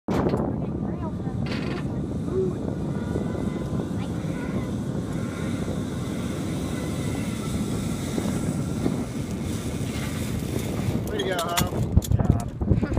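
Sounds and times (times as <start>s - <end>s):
wind on microphone: 0.1s - 12.9s
zip-line trolley rolling on cable: 0.3s - 12.0s.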